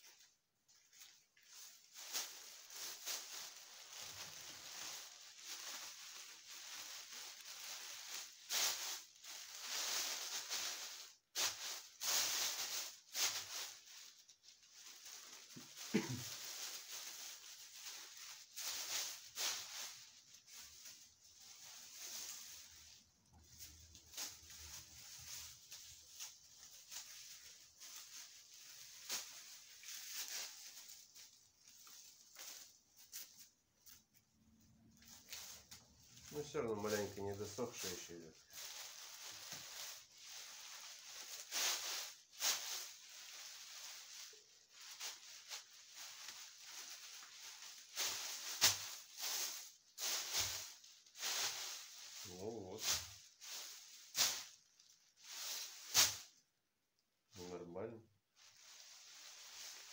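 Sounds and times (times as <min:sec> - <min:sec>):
leafy branches rustling and crackling: 0:00.0 - 0:56.4, 0:58.4 - 0:59.9.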